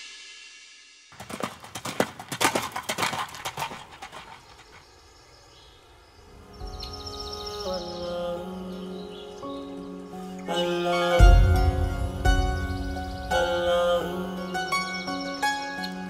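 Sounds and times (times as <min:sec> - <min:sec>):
horse hooves clopping on road: 0:01.2 - 0:04.9
background music with held notes: 0:06.4 - 0:16.0.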